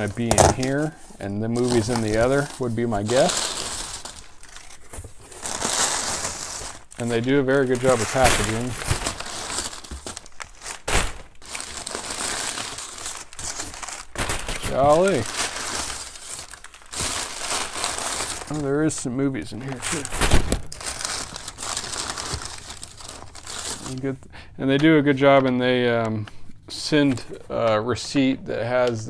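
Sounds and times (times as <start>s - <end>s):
packing paper rustling: 0.0s - 24.2s.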